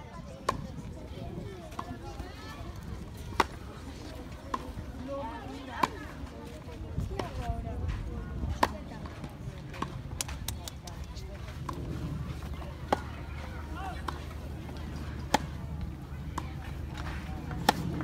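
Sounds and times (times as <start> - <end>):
tennis balls struck by rackets: 2.8 - 6.3, 8.4 - 18.0.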